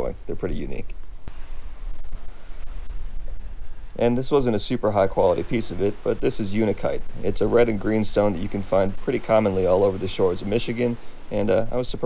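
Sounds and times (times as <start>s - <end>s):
waves washing ashore: 0.0s - 12.0s
wind buffeting microphone: 0.6s - 11.7s.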